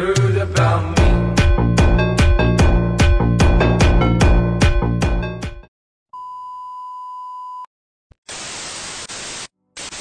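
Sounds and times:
tv static hiss: 8.3s - 10.0s.

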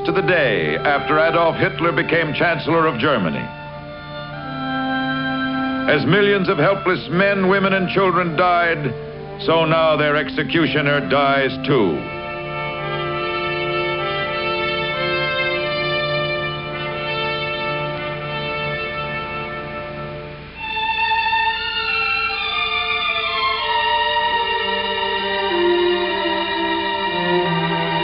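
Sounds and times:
sombre string score: 0.0s - 28.0s.

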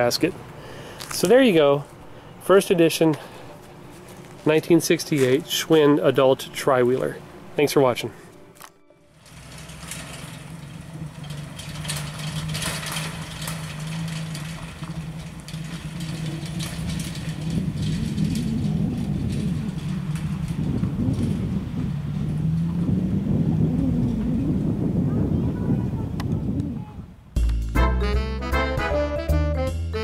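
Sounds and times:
car engine low drone: 0.0s - 25.7s.

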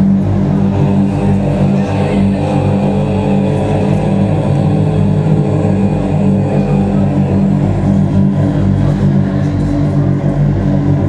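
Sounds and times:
black metal band playing loudly: 0.0s - 11.0s
distorted guitars: 0.0s - 11.0s.

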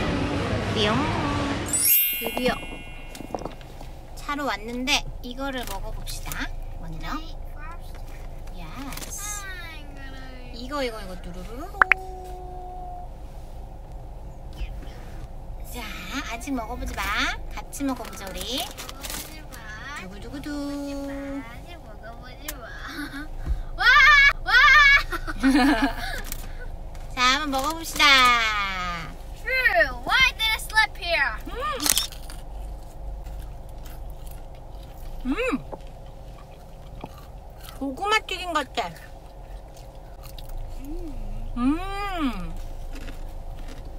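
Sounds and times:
low background rumble: 0.0s - 43.9s
steady chime tone: 1.7s - 3.8s
person chewing with crunching: 31.9s - 38.0s, 39.1s - 41.3s, 42.4s - 43.9s.

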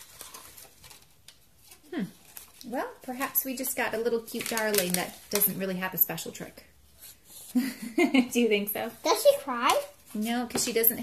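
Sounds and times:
toy packaging rustling and clicking: 0.0s - 2.7s, 3.5s - 5.7s.

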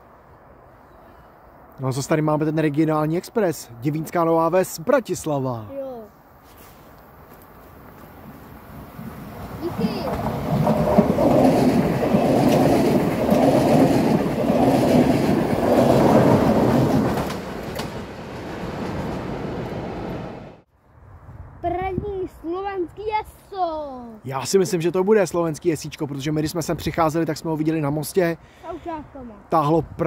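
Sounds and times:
passenger train passing: 7.1s - 20.6s
train wheels clickety-clack: 9.4s - 20.1s.

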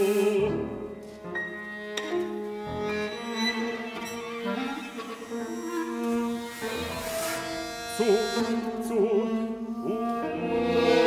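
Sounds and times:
bowed strings: 0.0s - 11.0s
piano: 0.0s - 11.0s
sliding string tones: 1.0s - 11.0s.

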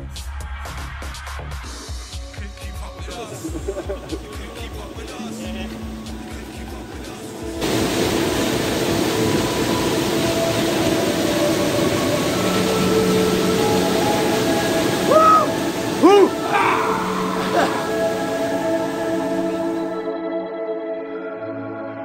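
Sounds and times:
music of long held tones: 1.8s - 22.0s
waterfall rushing: 3.2s - 20.0s
rising and falling cry: 12.1s - 19.8s.

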